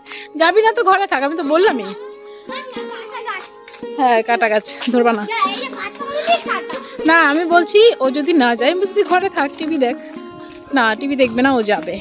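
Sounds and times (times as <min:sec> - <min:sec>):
background music: 0:00.0 - 0:12.0
child talking: 0:01.7 - 0:03.7, 0:05.1 - 0:07.0.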